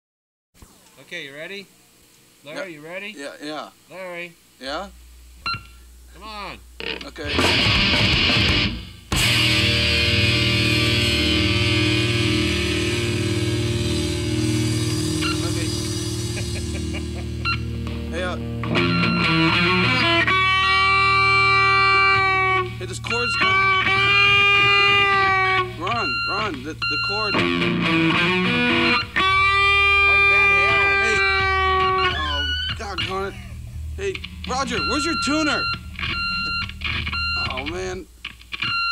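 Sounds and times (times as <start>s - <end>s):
low amplifier hum: 3.7s - 38.9s
distorted electric guitar: 6.8s - 38.9s
voices talking: 15.2s - 27.6s, 28.6s - 38.1s.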